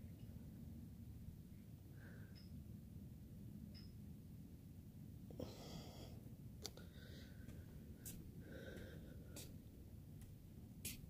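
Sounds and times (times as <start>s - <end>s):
breathing and sniffing: 5.4s - 6.2s, 6.8s - 9.6s.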